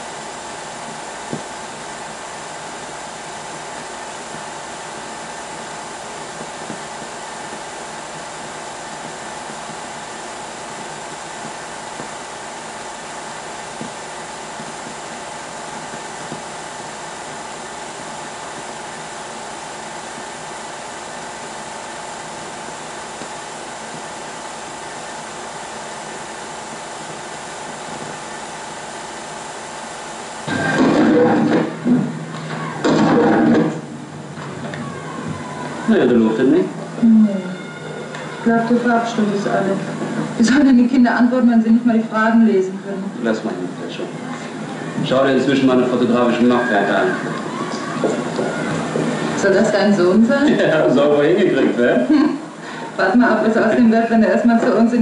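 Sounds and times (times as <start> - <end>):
faint hum: 0.0 - 55.0
film soundtrack hiss: 0.0 - 55.0.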